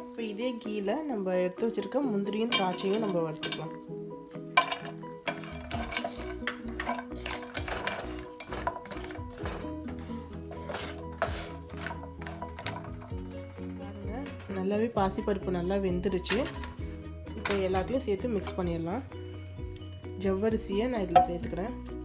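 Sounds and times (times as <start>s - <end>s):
background music: 0.0s - 22.0s
spatula scraping a pan: 4.6s - 13.6s
nuts frying in oil: 4.7s - 9.5s.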